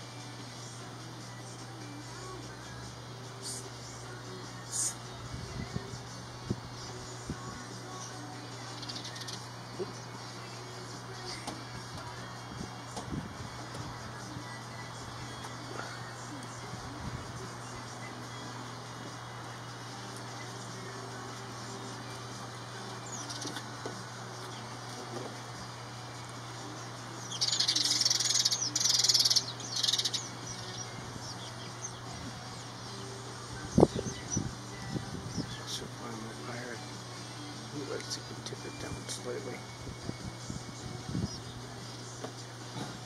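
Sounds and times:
sparrow chirping: 7.9s - 10.4s, 22.9s - 23.7s, 26.7s - 36.6s, 40.8s - 42.1s.

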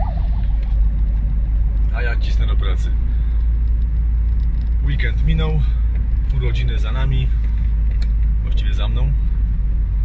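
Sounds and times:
fire engine siren warbling: 0.0s - 0.9s
road and engine noise in car: 0.0s - 10.0s.

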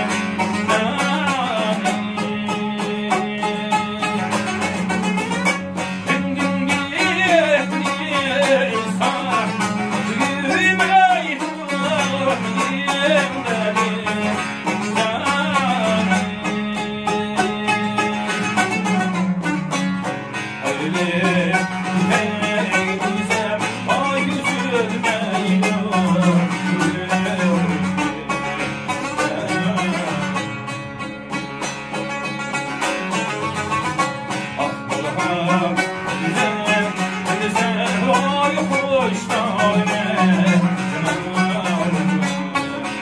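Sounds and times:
man singing: 0.0s - 19.5s, 20.5s - 30.7s, 34.3s - 43.0s
plucked lutes playing folk melody: 0.0s - 43.0s.

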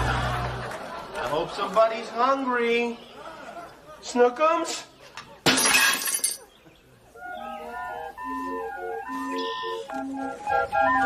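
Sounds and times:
crash of breaking glass and china: 5.5s - 6.4s.

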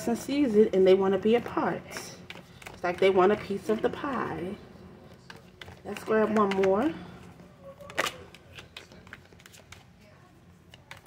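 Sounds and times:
cards being shuffled: 1.3s - 4.4s, 5.0s - 6.9s, 7.8s - 10.0s, 10.6s - 11.0s.

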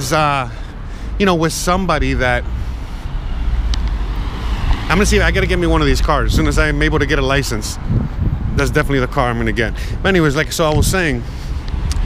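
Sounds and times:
steady low rumble: 0.0s - 12.0s
car passing by: 2.2s - 6.0s.

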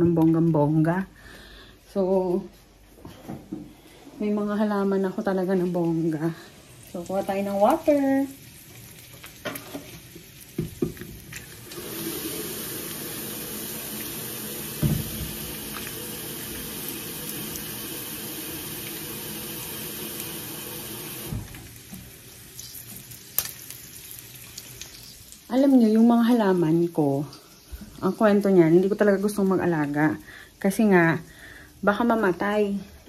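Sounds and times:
tap water running into jug: 10.5s - 22.0s
knock: 14.8s - 15.4s.

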